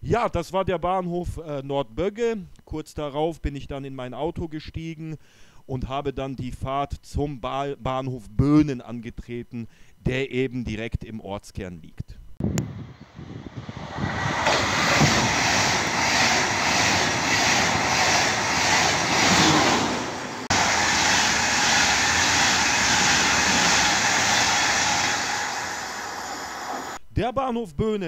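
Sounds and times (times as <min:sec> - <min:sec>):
high-speed train passing: 0:12.5 - 0:27.0.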